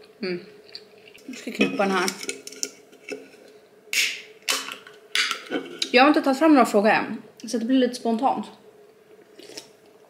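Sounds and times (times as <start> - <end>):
can opening crack and hiss: 3.9 - 5.4.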